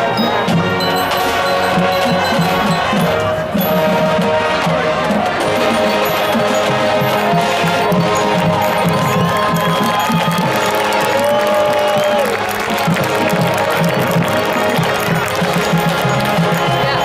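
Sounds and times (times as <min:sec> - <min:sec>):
crowd cheering: 0:00.0 - 0:17.0
marching band playing: 0:00.0 - 0:17.0.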